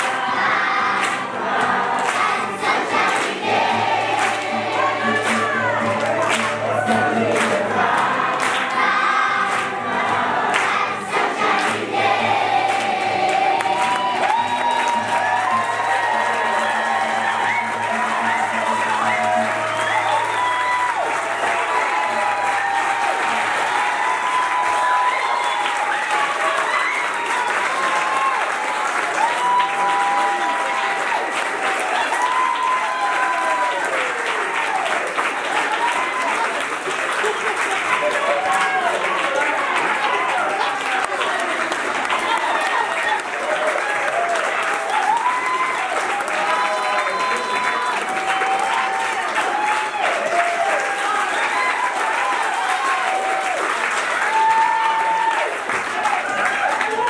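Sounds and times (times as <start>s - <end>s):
audience singing: 0.0s - 14.4s
children's choir singing: 0.0s - 14.6s
audience clapping along: 0.0s - 57.0s.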